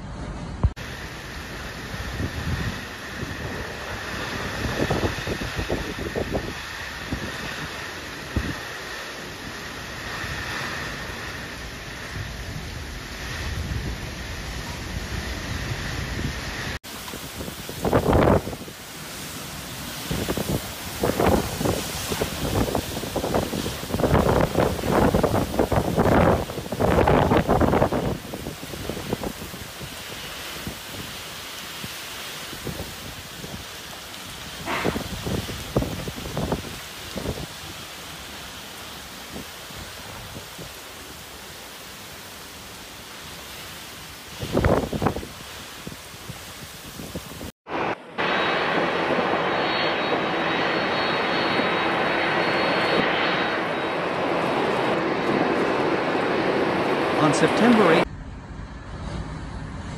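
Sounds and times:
heavy rain: 0.0 - 58.1
strong wind gusts: 0.0 - 59.9
thin high whine: 0.3 - 30.7, 34.5 - 36.8, 47.7 - 59.9.

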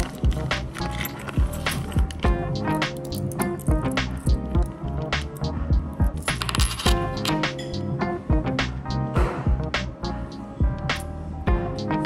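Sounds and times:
coins clinking: 0.0 - 7.9
background music with steady beat: 0.0 - 12.0.

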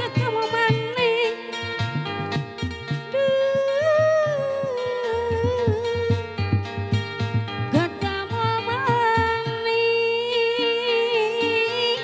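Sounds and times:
plucked zither: 0.0 - 12.0.

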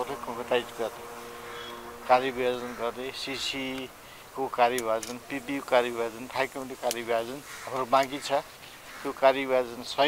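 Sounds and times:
man speaking: 0.0 - 1.1, 2.0 - 10.0
man hesitation hum: 0.0 - 4.5.

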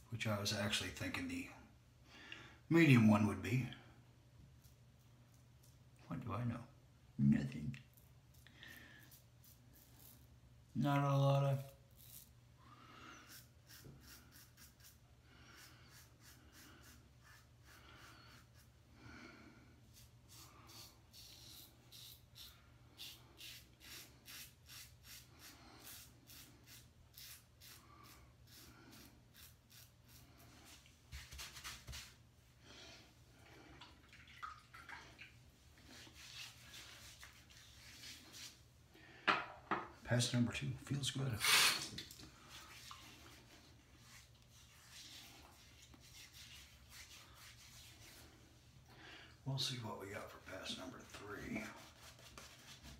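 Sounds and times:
razor scraping stubble: 13.3 - 15.0, 19.9 - 30.3.

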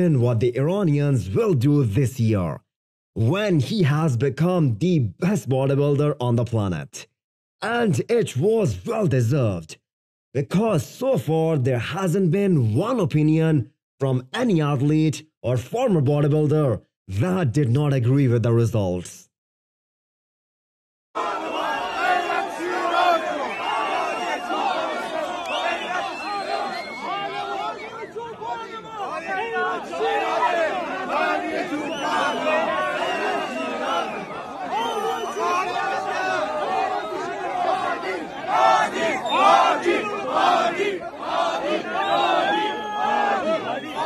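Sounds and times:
crowd shouting excitedly: 21.2 - 44.0.

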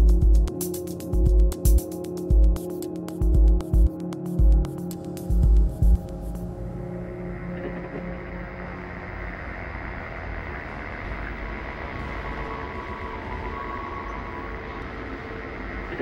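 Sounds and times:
low rumbling drone: 4.4 - 16.0
faint sustained tones: 5.0 - 16.0.

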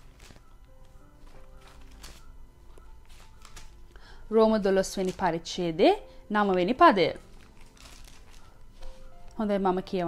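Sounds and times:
paper pages rustling: 0.0 - 3.9, 4.8 - 5.4, 6.4 - 9.4.

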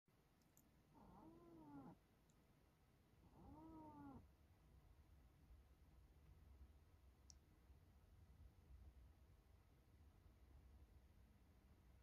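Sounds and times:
cat meowing softly: 0.9 - 2.0, 3.2 - 4.2.

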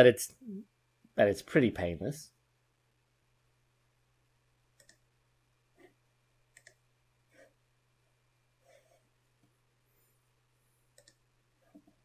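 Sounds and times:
faint clicks: 4.7 - 5.1, 6.5 - 6.8, 10.9 - 12.0.

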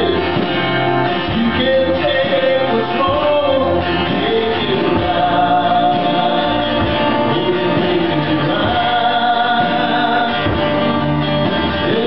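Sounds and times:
man singing gospel into microphone: 0.0 - 0.5, 1.2 - 10.8, 11.7 - 12.0
acoustic guitar: 0.0 - 12.0.

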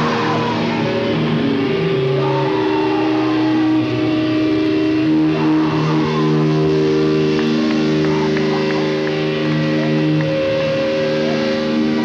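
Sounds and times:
distorted electric guitar feedback: 0.0 - 12.0.

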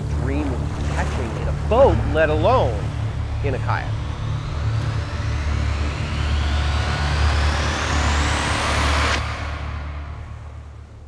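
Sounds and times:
deep rumbling drone: 0.0 - 11.0
rising whooshing sweep: 0.6 - 10.9.

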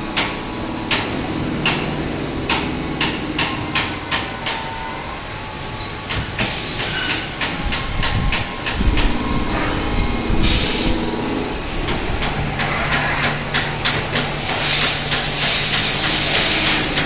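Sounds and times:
motor hum: 0.0 - 4.1, 7.5 - 14.7
hiss of blown air: 8.7 - 13.3, 14.4 - 17.0.

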